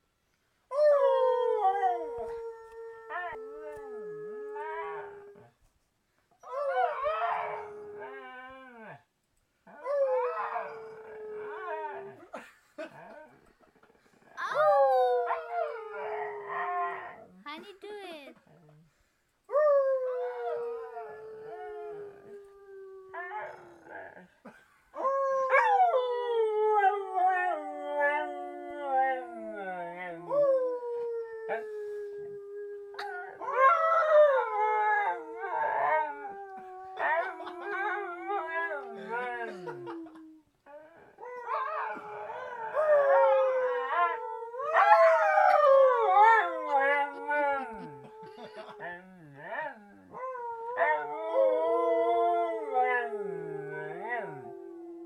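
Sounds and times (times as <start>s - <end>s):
dog howling: 33.0s - 48.7s, 49.4s - 55.0s.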